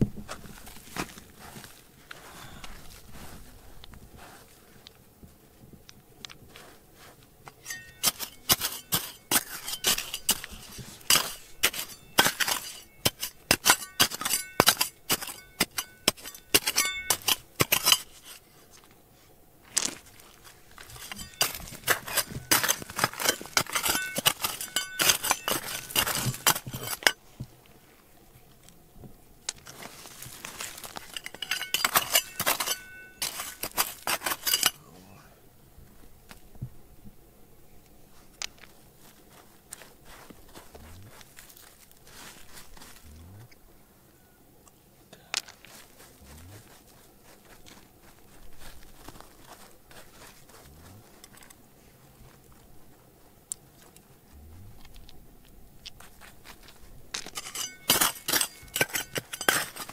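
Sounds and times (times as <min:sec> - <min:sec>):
metal blade scraping stony soil: 0:06.5 - 0:18.9, 0:19.8 - 0:27.2, 0:29.5 - 0:34.9, 0:55.8 - 0:59.9
ringing metallic clinks: 0:07.6 - 0:18.0, 0:20.9 - 0:27.2, 0:31.1 - 0:34.8, 0:57.3 - 0:59.9.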